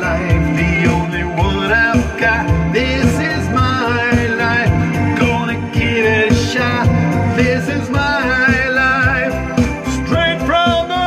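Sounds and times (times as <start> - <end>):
backing music with steady beat: 0.0 - 11.0
man singing into a microphone: 0.0 - 11.0.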